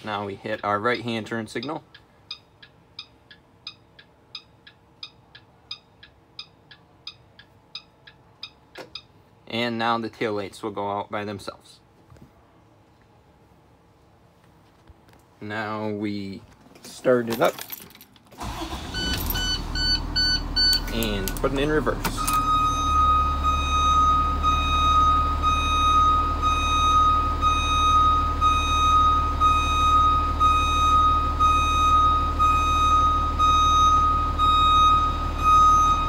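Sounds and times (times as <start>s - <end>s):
turn signal flasher ticking: 0.6s - 9.2s
electronic warning beep: 1.6s - 9.1s, 18.9s - 21.0s, 22.2s - 36.0s
bus engine starting and running: 18.2s - 36.0s.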